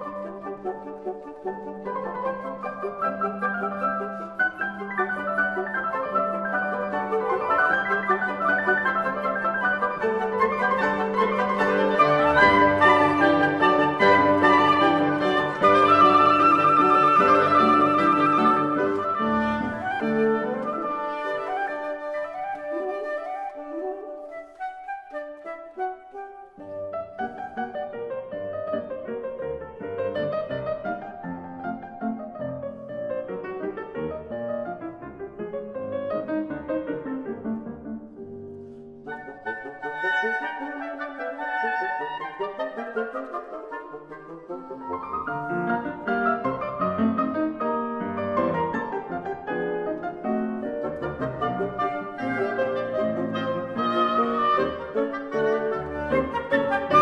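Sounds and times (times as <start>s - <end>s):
piano staccato passage: 0.0s - 57.0s
woodwind ensemble: 0.0s - 57.0s.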